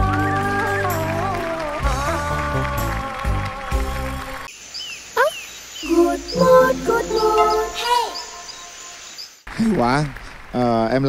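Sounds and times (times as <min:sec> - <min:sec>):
stage music: 0:05.9 - 0:08.0.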